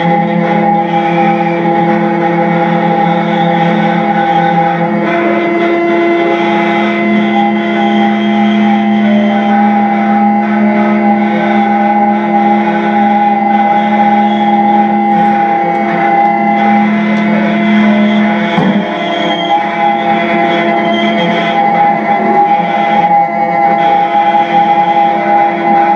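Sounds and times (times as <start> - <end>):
electronic guitar drone: 0.0 - 25.9.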